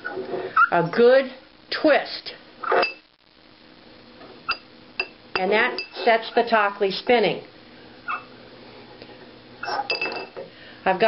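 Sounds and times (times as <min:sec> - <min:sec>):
clink against ceramic: 0:09.9 - 0:10.3.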